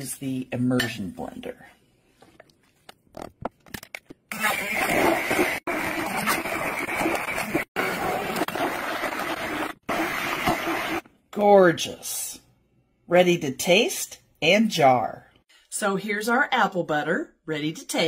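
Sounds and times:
immersion blender running: 0:04.3 - 0:11.0.

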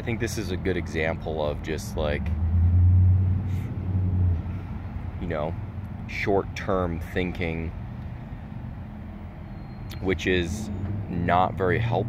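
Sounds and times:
motor vehicle engine hum: 0:00.0 - 0:12.0.

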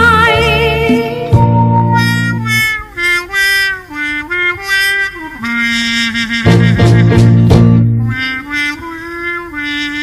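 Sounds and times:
band playing: 0:00.0 - 0:10.0
lead instrument melody: 0:00.0 - 0:10.0.

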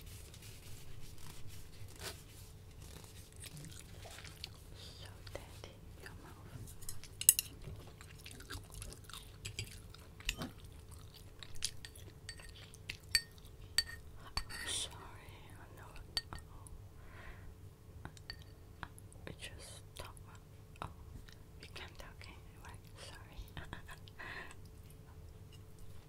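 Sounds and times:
person chewing food: 0:02.8 - 0:04.8, 0:07.0 - 0:13.8.

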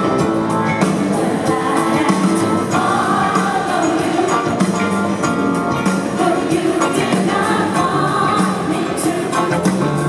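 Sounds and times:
live band playing: 0:00.0 - 0:10.0
backing singers harmonizing: 0:00.8 - 0:05.2, 0:05.9 - 0:10.0.

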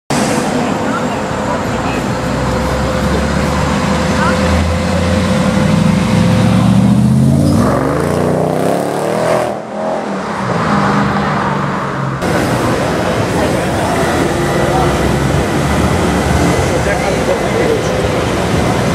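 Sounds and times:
car engine accelerating: 0:00.2 - 0:18.9.

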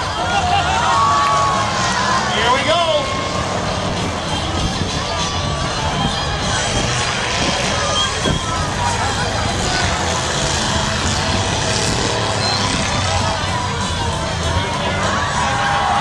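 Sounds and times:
crowd chatter: 0:00.0 - 0:16.0
race car engines: 0:00.0 - 0:16.0.

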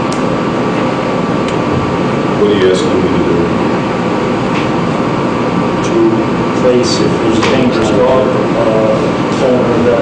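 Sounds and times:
faint constant hum: 0:00.0 - 0:10.0
rushing room noise: 0:00.0 - 0:10.0.

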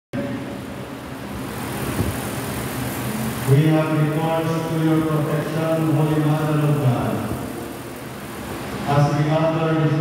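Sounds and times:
hall background hiss: 0:01.0 - 0:10.0.

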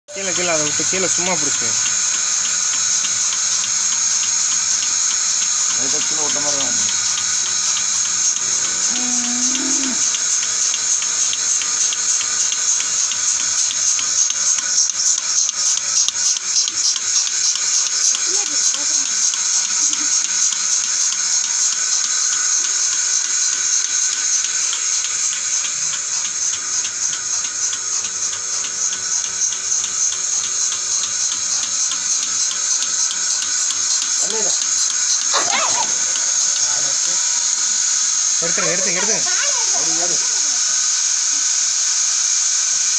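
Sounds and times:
milking machine hiss and pulse: 0:00.1 - 0:42.9.

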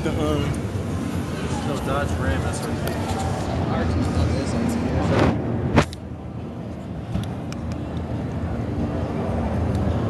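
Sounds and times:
exhibition hall rumble: 0:00.0 - 0:10.0.

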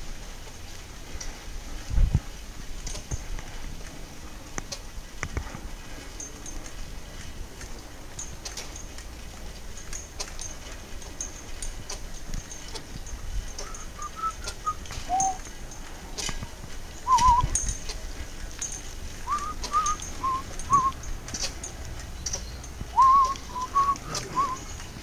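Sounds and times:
faint high chirps: 0:13.6 - 0:15.4.

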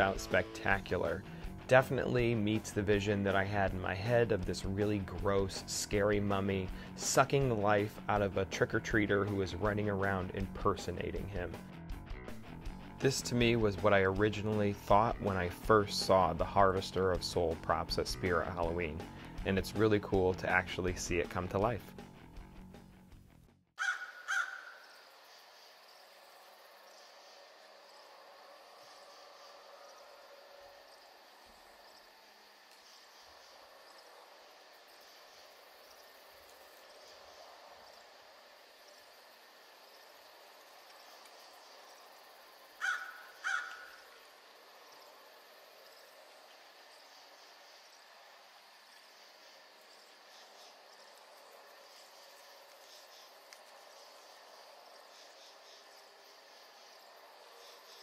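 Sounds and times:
crow cawing: 0:23.8 - 0:25.0, 0:42.8 - 0:44.2
insects at night: 0:23.8 - 0:58.0.

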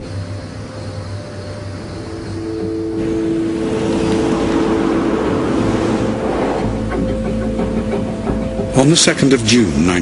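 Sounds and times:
rushing noise: 0:00.0 - 0:08.5
sustained low tones: 0:01.1 - 0:08.6.

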